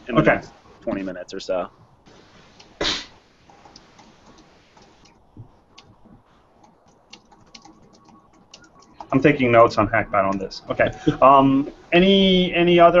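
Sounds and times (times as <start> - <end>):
computer keyboard typing: 3.5 - 9.6.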